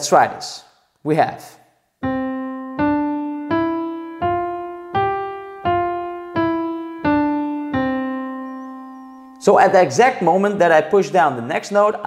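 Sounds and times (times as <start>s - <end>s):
digital piano playing a scale: 2.0s - 10.6s.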